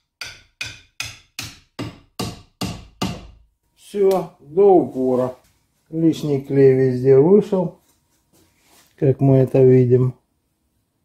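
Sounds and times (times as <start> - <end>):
hammer knocking on wooden handle: 0.2 - 3.4.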